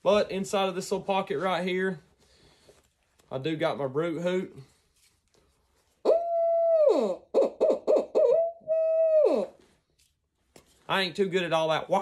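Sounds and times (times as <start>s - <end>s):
owl hooter call: 6.0s - 9.6s.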